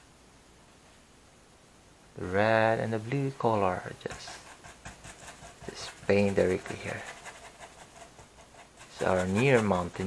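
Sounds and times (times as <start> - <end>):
bristle brush scrubbing canvas: 3.7 - 10.0.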